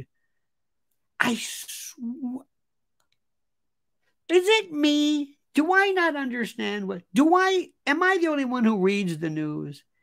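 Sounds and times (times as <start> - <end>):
man's voice: 1.2 - 2.5, 4.3 - 9.9.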